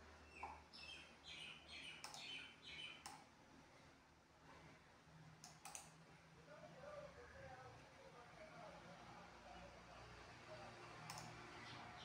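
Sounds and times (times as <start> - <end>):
faint clicks: 2.0 - 2.3, 5.4 - 6.0, 11.1 - 11.4.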